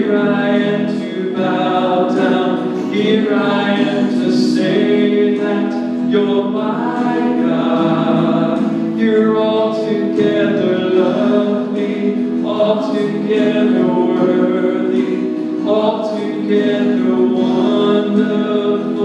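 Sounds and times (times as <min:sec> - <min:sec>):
man singing into a microphone: 0:00.0 - 0:19.0.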